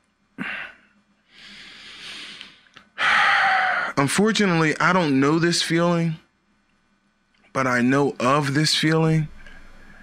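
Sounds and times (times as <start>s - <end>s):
man sighing heavily: 0.4s - 0.8s, 1.5s - 4.0s
man breathing into microphone: 0.4s - 4.0s.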